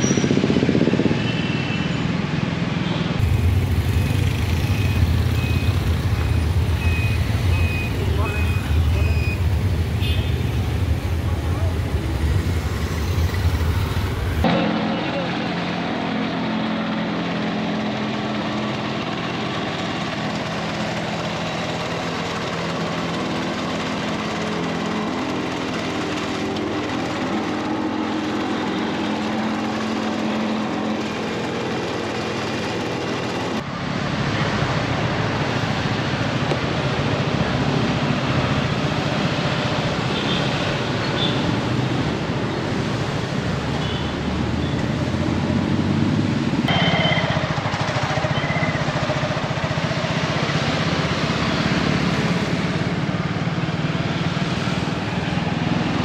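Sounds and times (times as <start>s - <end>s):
street noise rumble: 0.0s - 56.0s
road roller engine running: 3.2s - 44.0s, 46.3s - 56.0s.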